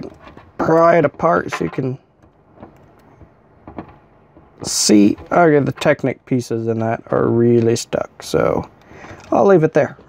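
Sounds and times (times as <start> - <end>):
plastic pieces handling noise: 0.0 - 6.1.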